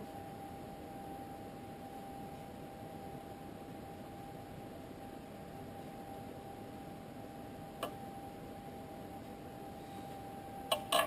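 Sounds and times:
thin steady whine: 0:00.0 - 0:11.0.

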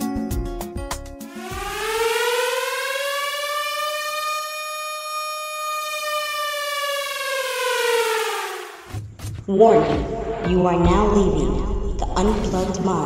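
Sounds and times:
siren wail: 0:01.3 - 0:09.0.

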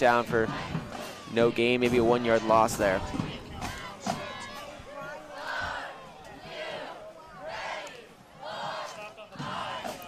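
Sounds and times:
football crowd cheering and shouting: 0:00.0 - 0:10.0
voices calling out: 0:00.0 - 0:10.0.

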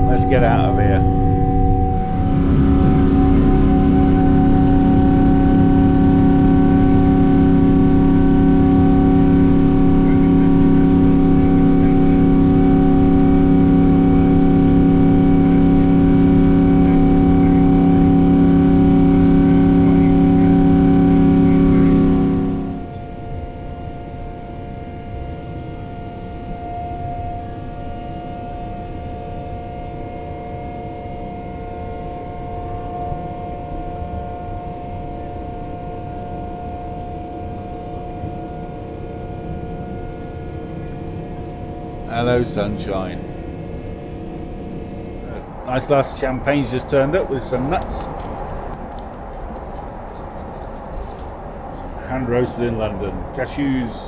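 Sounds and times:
cabin drone: 0:00.0 - 0:54.0
engine whining tones: 0:00.0 - 0:54.0
jet engines rumbling: 0:00.0 - 0:54.0.

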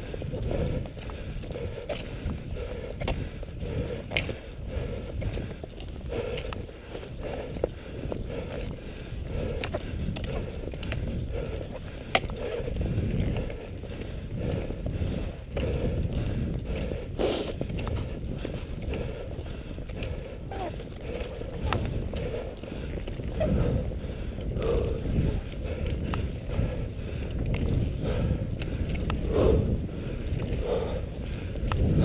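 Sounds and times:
skis gliding over snow: 0:00.0 - 0:32.0.

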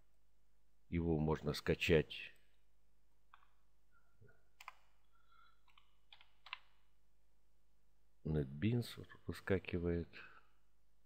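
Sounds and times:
faint keyboard keystrokes: 0:05.6 - 0:06.7.

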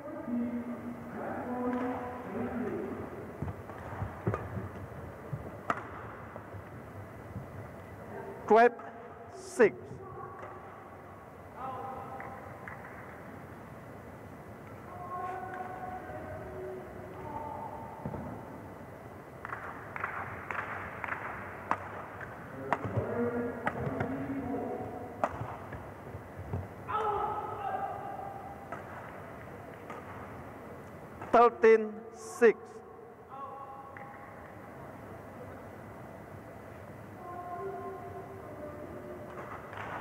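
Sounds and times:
racket striking shuttlecock: 0:03.4 - 0:04.8, 0:05.4 - 0:06.3, 0:19.4 - 0:24.2, 0:25.2 - 0:25.9, 0:28.6 - 0:30.4.

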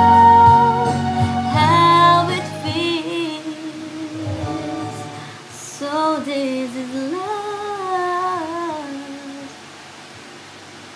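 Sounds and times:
woman singing a long note: 0:00.0 - 0:09.6
steady background hiss: 0:00.0 - 0:10.9.

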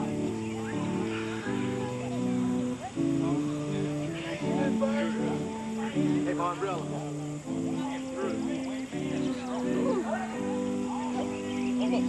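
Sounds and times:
music with sustained notes: 0:00.0 - 0:12.0
people talking: 0:00.0 - 0:12.0.

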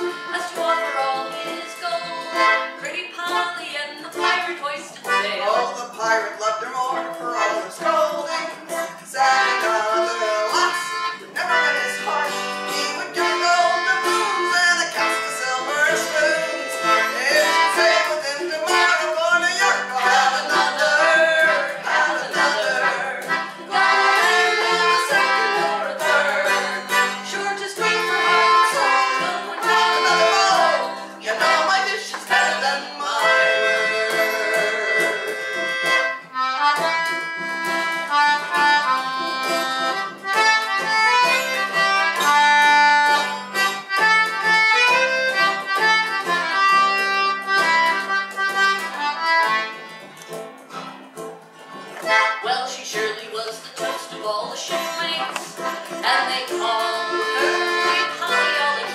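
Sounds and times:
concertina melody: 0:00.0 - 0:53.4, 0:54.7 - 0:58.9
acoustic guitar: 0:00.0 - 0:58.9.

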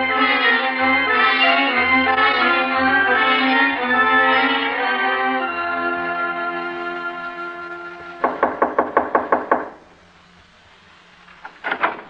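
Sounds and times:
knocking on a door: 0:08.2 - 0:09.8.

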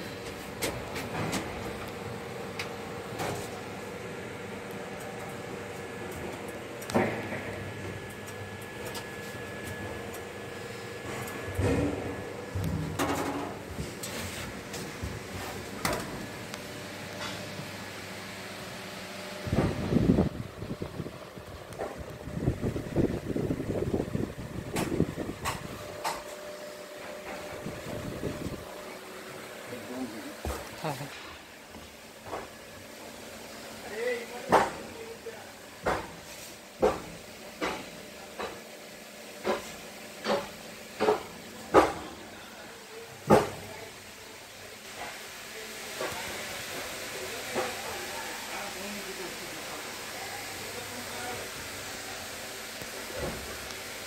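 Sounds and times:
ventilation hum: 0:00.0 - 0:54.0.

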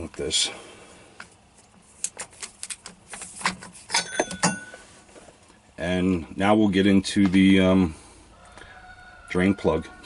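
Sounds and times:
metallic clicks and clinks: 0:03.9 - 0:04.8.

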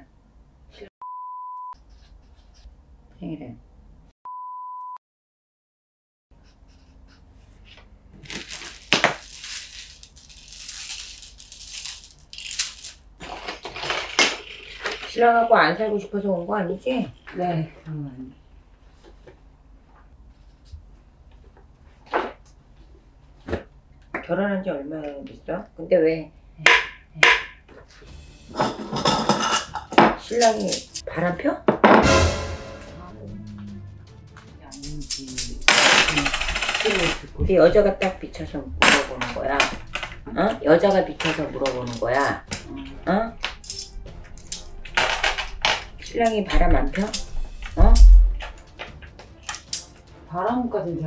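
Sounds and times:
beads rattling and clicking: 0:08.3 - 0:15.0, 0:35.0 - 0:37.2.

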